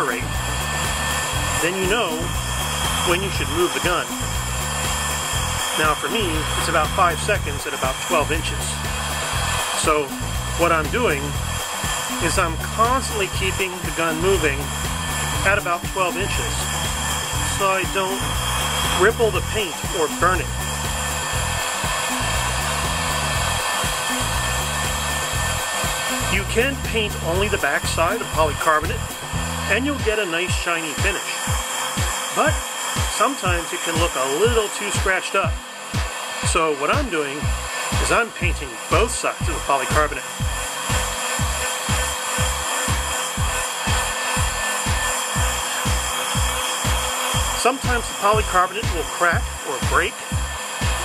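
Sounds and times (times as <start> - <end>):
background music: 0.0 - 51.0
heat gun fan blowing: 0.0 - 51.0.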